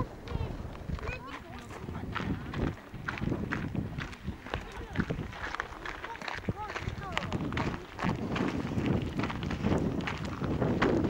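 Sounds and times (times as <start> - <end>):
people talking indistinctly: 0.0 - 9.6.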